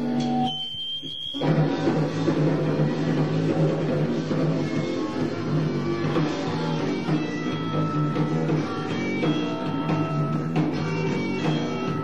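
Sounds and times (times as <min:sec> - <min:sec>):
high steady tone: 0:00.0 - 0:01.6
punk rock band: 0:01.3 - 0:12.0.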